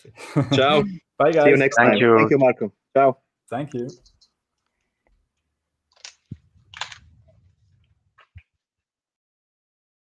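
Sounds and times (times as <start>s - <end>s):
quick clicks: 5.9s - 7.2s.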